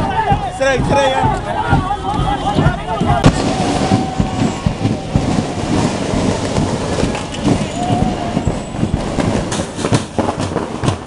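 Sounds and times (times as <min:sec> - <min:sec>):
firecrackers crackling: 0:00.0 - 0:11.0
sharp loud bang: 0:00.0 - 0:11.0.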